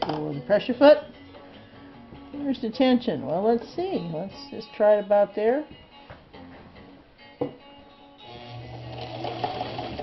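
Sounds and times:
sewing machine stitching: 0:08.4 - 0:10.0.

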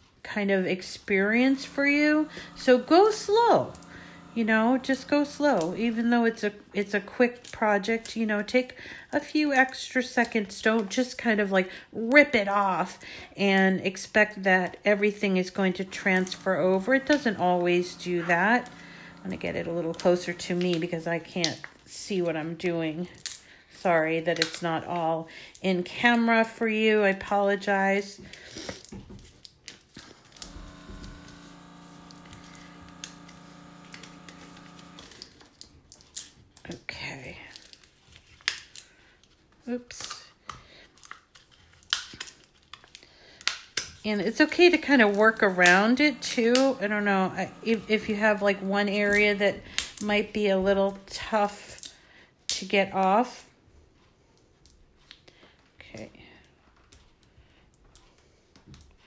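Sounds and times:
steady hum: 0:00.3 - 0:07.0, 0:14.4 - 0:22.1, 0:30.1 - 0:35.5, 0:44.2 - 0:50.2
tape peeling clicks and crackles: 0:28.3 - 0:36.8, 0:37.4 - 0:50.2
tape peeling off backing: 0:29.3 - 0:36.4.

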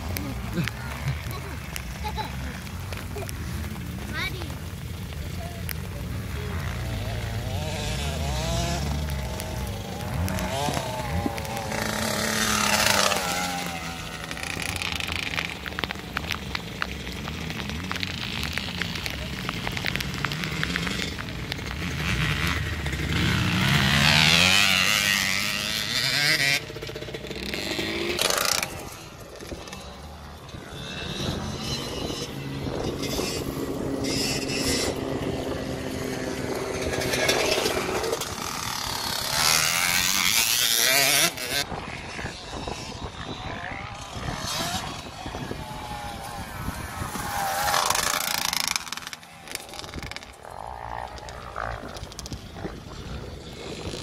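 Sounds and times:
motocross bikes revving: 0:00.0 - 0:54.0
wind noise on microphone: 0:28.6 - 0:40.3, 0:41.0 - 0:48.3, 0:49.6 - 0:54.0.

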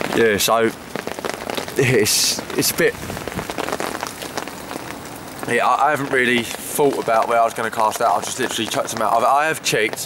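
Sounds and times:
heavy rain on umbrella canopy: 0:00.0 - 0:10.0.

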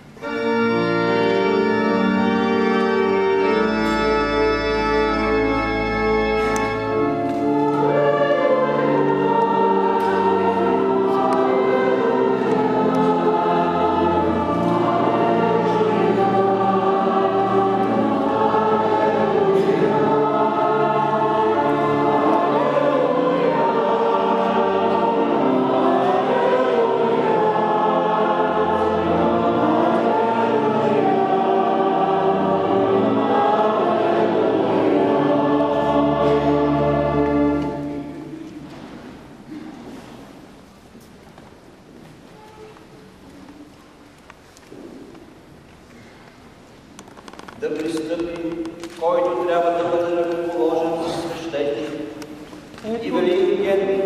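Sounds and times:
choir singing: 0:00.2 - 0:39.2, 0:47.8 - 0:54.0.

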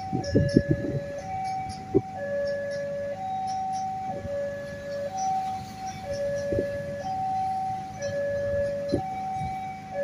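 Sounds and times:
level crossing two-tone alarm: 0:00.0 - 0:10.0.

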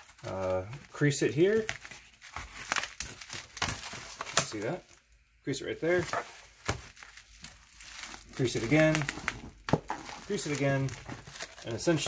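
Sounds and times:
cardboard cracking: 0:00.0 - 0:04.8, 0:05.9 - 0:12.0
cardboard handling noise: 0:00.0 - 0:05.1, 0:05.8 - 0:12.0.

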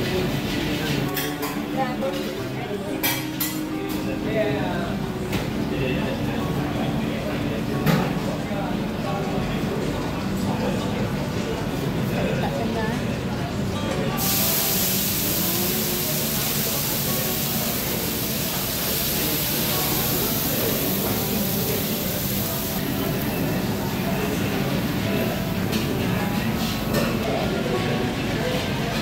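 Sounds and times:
diners chattering: 0:00.0 - 0:29.0
restaurant music: 0:00.0 - 0:29.0
steady hiss: 0:14.2 - 0:23.4.

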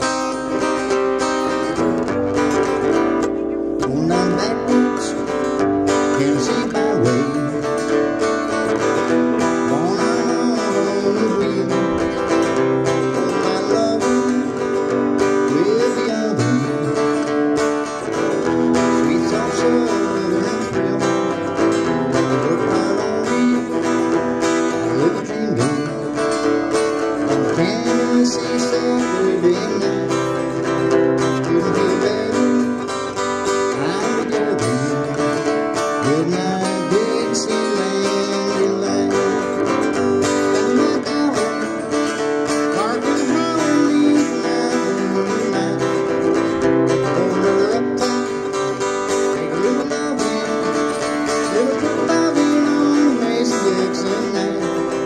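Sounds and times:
acoustic-electric guitar strumming: 0:00.0 - 0:55.0
sliding guitar melody: 0:00.0 - 0:55.0.

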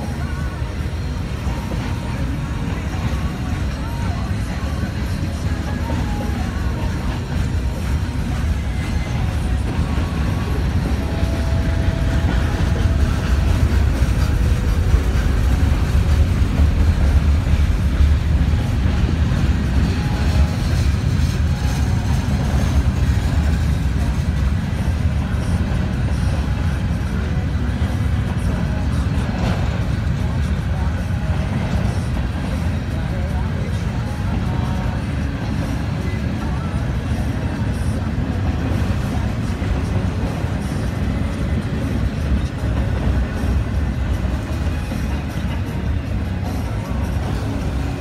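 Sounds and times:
freight train wheels rumbling on rail: 0:00.0 - 0:48.0.

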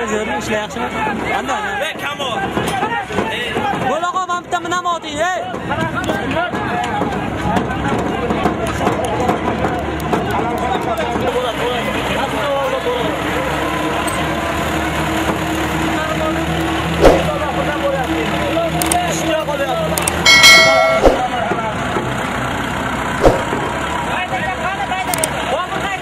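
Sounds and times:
crowd talking and calling out: 0:00.0 - 0:26.0
sharp knocks: 0:20.3 - 0:21.4, 0:23.2 - 0:23.6.

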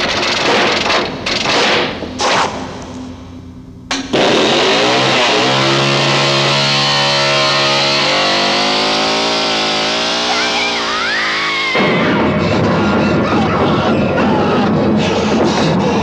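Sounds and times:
chainsaw revving: 0:04.1 - 0:11.9.

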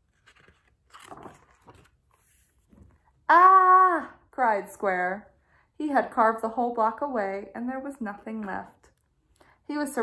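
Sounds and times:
paper page turning: 0:00.0 - 0:03.0.

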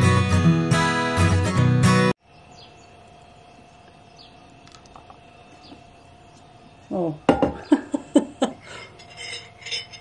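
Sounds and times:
woman laughing: 0:07.5 - 0:08.8
glass jar clinking: 0:08.7 - 0:10.0.

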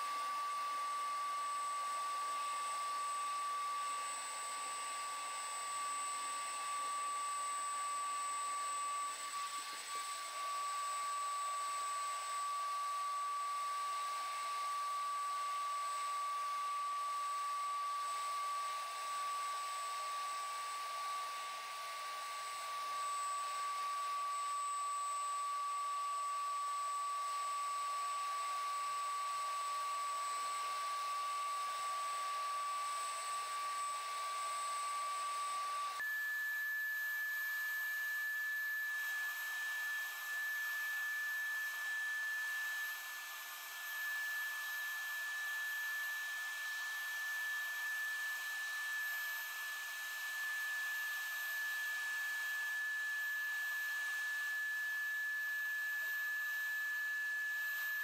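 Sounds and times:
paint spray turbine whining: 0:00.0 - 0:58.0.

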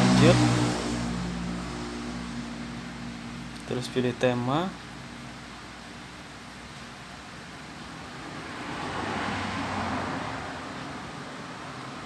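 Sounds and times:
vehicle passing: 0:00.0 - 0:03.5, 0:07.9 - 0:12.0
steady hiss and hum: 0:00.0 - 0:09.0.

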